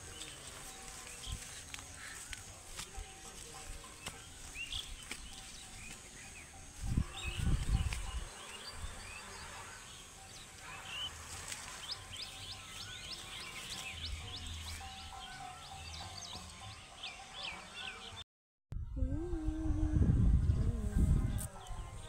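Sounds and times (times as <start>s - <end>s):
small birds chirping: 0.0s - 18.2s.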